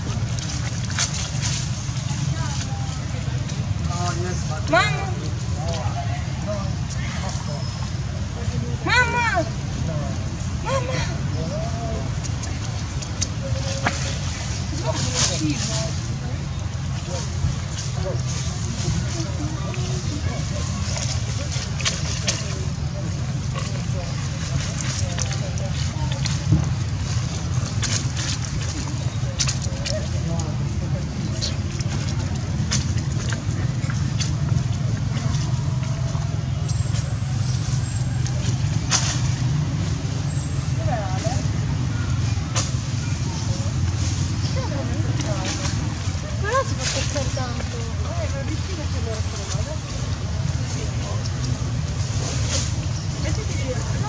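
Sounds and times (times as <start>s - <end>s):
faint distant voices: 0.0s - 54.0s
steady low rumble: 0.0s - 54.0s.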